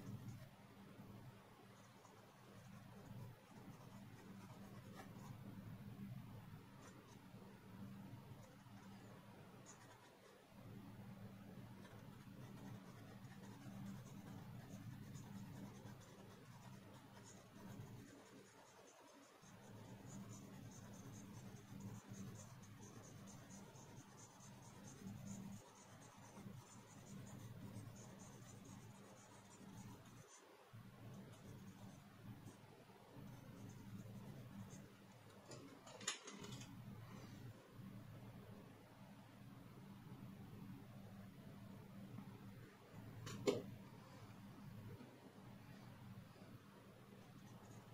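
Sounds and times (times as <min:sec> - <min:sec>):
pencil scratching on paper: 0:01.8 - 0:05.5, 0:08.2 - 0:10.4, 0:11.8 - 0:30.5, 0:31.1 - 0:35.6, 0:47.2 - 0:47.9.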